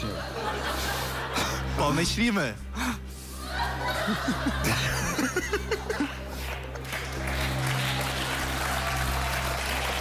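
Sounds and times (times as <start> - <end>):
audience laughing: 0.0 - 2.0, 3.2 - 6.8.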